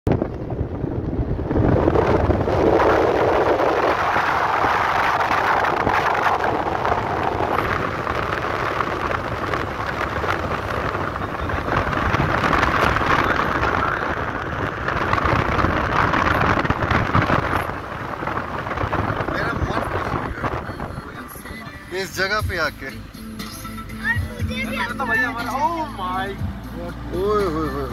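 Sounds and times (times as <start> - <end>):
car wind and road noise: 0.0 - 27.9.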